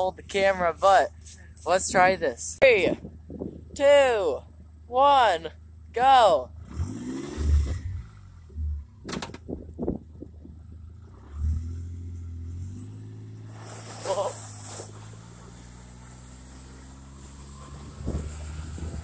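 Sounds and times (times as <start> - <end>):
vehicle engine running: 0.0 - 19.0.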